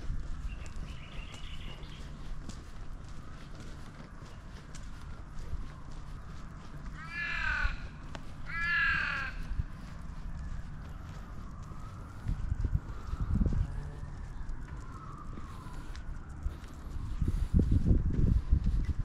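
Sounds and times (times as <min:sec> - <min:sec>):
crow cawing: 0:06.9 - 0:09.7.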